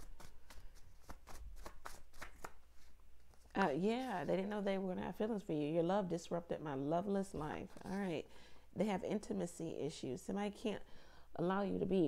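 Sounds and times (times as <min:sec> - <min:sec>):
cards being shuffled: 0:00.0 - 0:04.3, 0:07.6 - 0:08.1.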